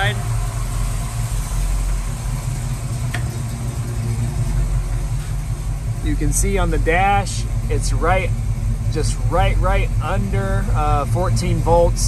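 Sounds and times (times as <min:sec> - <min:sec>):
car engine idling: 0:00.0 - 0:12.0
radiator fan running: 0:00.0 - 0:12.0.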